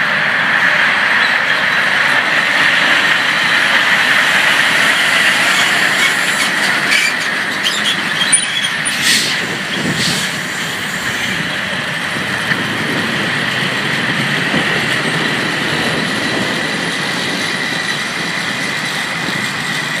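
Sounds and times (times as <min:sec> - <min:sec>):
high whine: 0:00.0 - 0:20.0.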